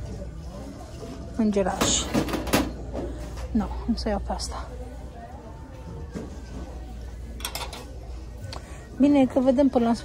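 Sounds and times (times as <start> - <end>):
glassware clattering: 7.4 - 7.9.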